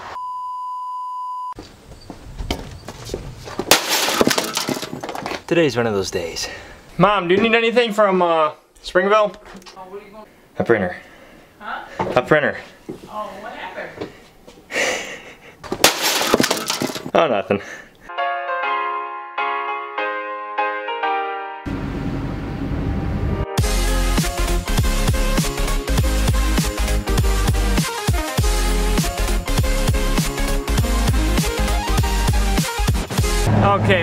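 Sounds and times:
steady high beep: 0:00.2 - 0:01.6
sledgehammer smashing plastic printer: 0:03.7 - 0:05.2, 0:15.8 - 0:17.1
plastic pieces clattering: 0:03.7 - 0:05.4, 0:15.8 - 0:17.1.

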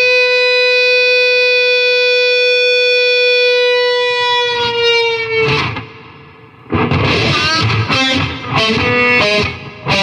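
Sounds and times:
distorted electric guitar note: 0:00.0 - 0:10.0.

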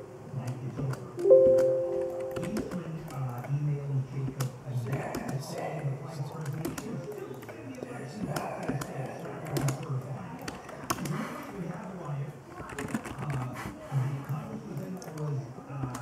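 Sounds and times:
keyboard typing clicks: 0:01.2 - 0:02.8.

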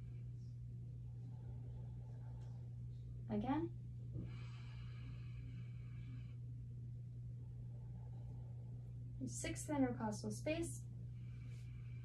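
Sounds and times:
man breathing in deeply: 0:04.2 - 0:06.4.

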